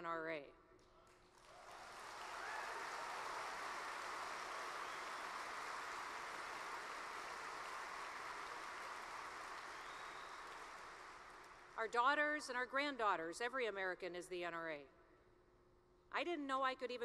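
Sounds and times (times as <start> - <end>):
large audience applauding: 1.2 - 11.8.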